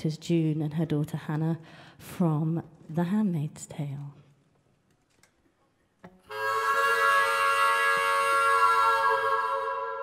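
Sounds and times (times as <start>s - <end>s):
harmonica chord: 6.3s - 10.0s.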